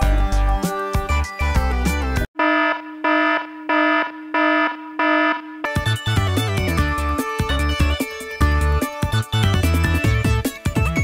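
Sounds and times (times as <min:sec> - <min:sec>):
music: 0:00.0 - 0:02.3, 0:05.7 - 0:11.0
electronic alarm beeping: 0:02.4 - 0:06.6.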